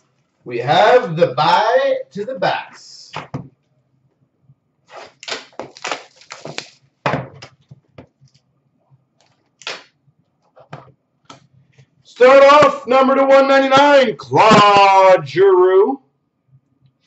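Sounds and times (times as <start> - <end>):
plastic wrap crinkling: 4.9 - 6.8
plastic wrap ripping: 4.9 - 6.8.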